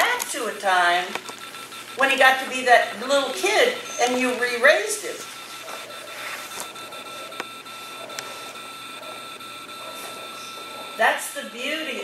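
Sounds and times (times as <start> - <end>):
high-pitched electrical whine: 0.0 - 12.0.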